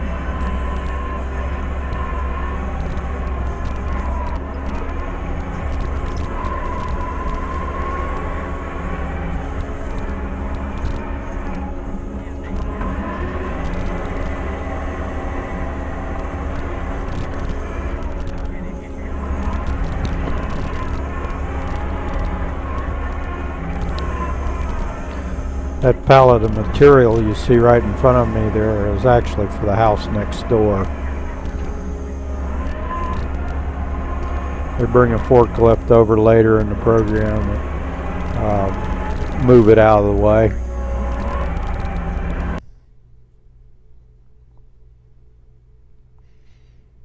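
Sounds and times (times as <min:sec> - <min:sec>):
loader engine droning: 0:00.0 - 0:42.9.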